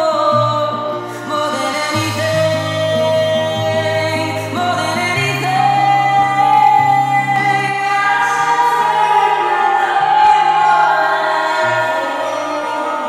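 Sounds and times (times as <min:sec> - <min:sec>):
person singing long held notes: 0:00.0 - 0:13.0.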